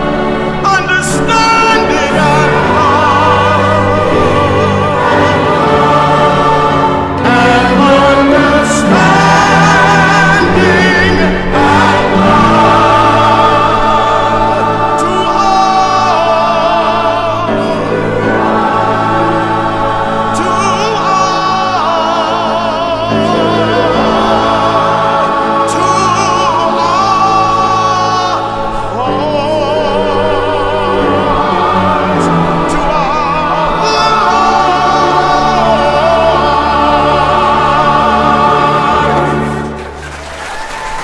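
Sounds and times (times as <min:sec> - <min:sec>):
mixed choir singing: 0:00.0 - 0:41.0
string orchestra: 0:00.0 - 0:41.0.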